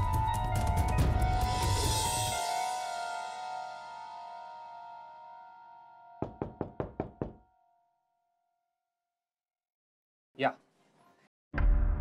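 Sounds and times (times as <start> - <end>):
background music: 0.0 - 8.0
knocks on a door: 6.2 - 7.4.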